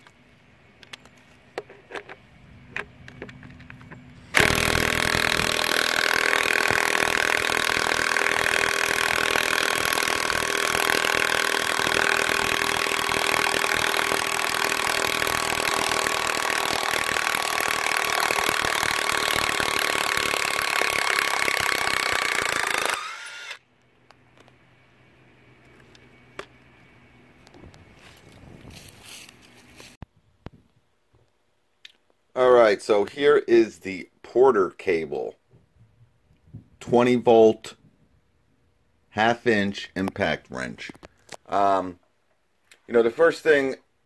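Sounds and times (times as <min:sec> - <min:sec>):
impact wrench hammering: 0:04.3 - 0:23.6.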